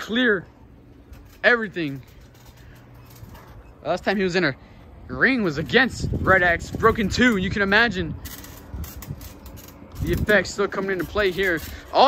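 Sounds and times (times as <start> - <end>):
trampoline springs creaking: 0.0 - 12.0.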